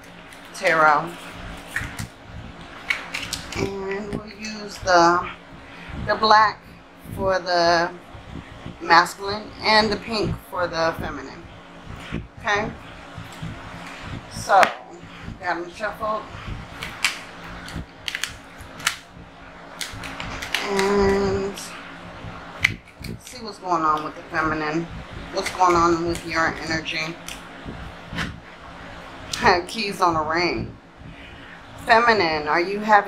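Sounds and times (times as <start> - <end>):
cards clicking and snapping: 2.8 - 3.7, 16.8 - 19.0, 19.8 - 20.9.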